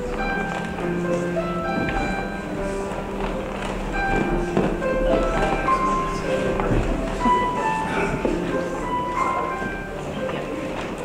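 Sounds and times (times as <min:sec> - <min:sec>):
church organ chords: 0:00.0 - 0:11.0
soft knocks: 0:00.0 - 0:11.0.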